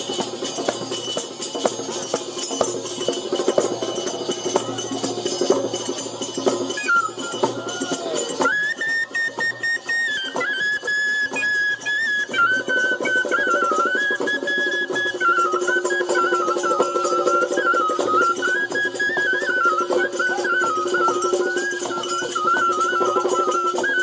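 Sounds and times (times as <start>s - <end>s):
hand drum fast rhythm: 0.0s - 8.4s
high wind instrument melody: 0.0s - 24.0s.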